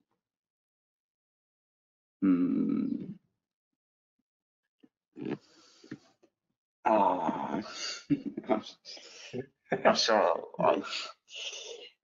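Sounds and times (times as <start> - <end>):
person grunting: 2.2 - 3.1, 6.9 - 8.6.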